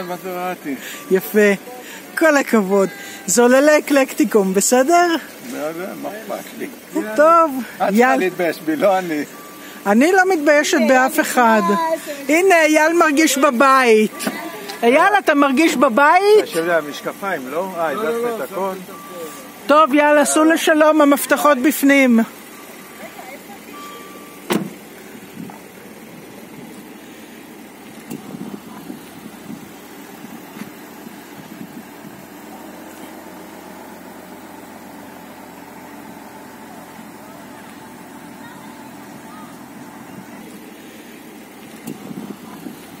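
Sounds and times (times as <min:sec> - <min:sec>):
car engine idling: 0:00.0 - 0:43.0
faint voices: 0:00.0 - 0:43.0
car door shutting: 0:14.1 - 0:14.8, 0:24.0 - 0:25.6, 0:28.0 - 0:29.7, 0:30.5 - 0:30.8, 0:41.7 - 0:42.8.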